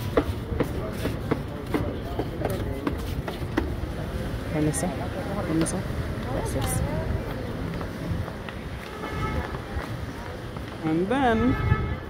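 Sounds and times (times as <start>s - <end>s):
footsteps on pavement: 0.0s - 4.8s, 5.4s - 12.0s
low street rumble: 0.0s - 12.0s.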